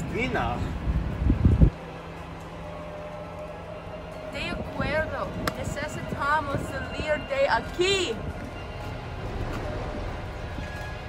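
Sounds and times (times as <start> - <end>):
wind buffeting microphone: 0.0 - 2.6, 4.4 - 11.0.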